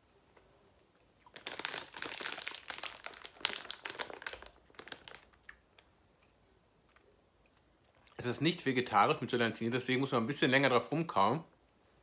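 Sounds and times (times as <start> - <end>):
plastic bag crinkling: 1.2 - 5.9.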